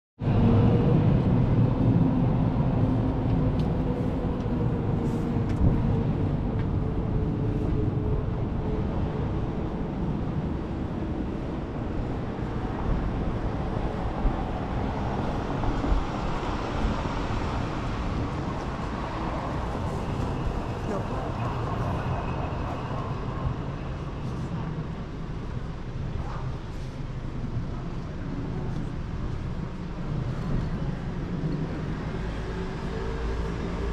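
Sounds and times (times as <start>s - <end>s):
passing vehicles rumbling: 0.2s - 33.9s.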